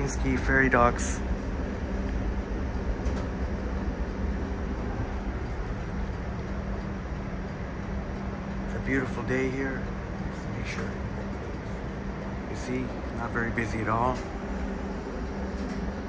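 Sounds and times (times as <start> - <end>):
streetcar cabin hum: 0.0 - 16.0.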